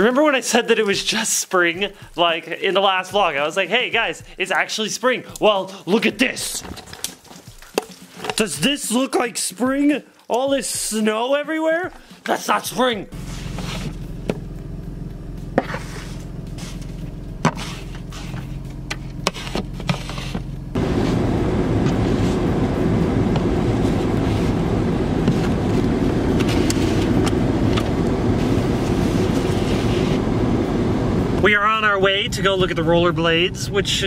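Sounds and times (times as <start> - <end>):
ice scraper scraping windshield: 13.1 - 14.5, 15.5 - 22.7, 23.3 - 30.2
car engine idling: 13.1 - 34.0
loud steady rushing noise: 20.8 - 34.0.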